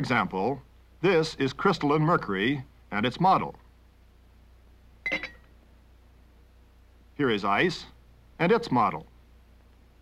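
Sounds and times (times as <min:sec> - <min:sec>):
faint low hum: 0:00.0 - 0:10.0
glass clink: 0:05.1 - 0:05.5.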